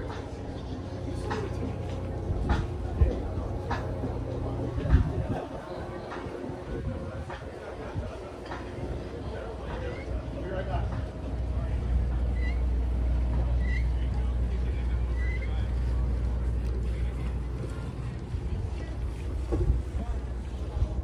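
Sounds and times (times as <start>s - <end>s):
wind buffeting microphone: 0.0s - 13.6s, 14.3s - 21.0s.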